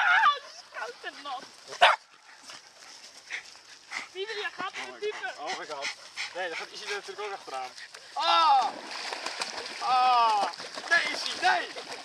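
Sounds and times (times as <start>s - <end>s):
dog barking: 1.8s - 2.0s.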